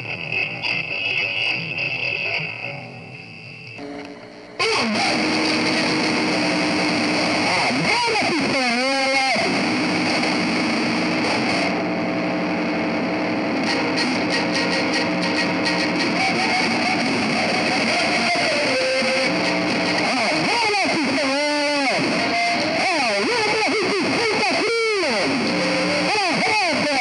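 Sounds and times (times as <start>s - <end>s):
loud distorted noisy wash: 3.8s - 27.0s
guitar strumming: 13.5s - 21.2s.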